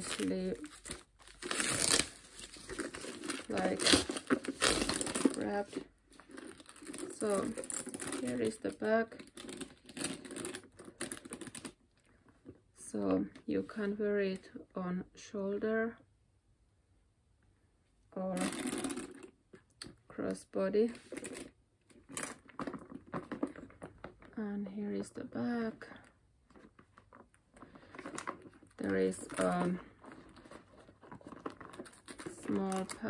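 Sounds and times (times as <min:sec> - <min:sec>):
packaging wrapping crinkling: 0:00.0 - 0:11.8, 0:26.6 - 0:33.0.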